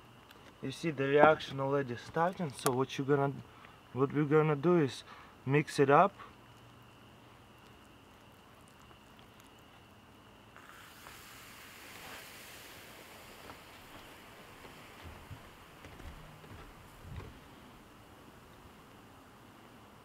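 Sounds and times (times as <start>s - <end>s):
faint steady hiss: 0.0s - 20.0s.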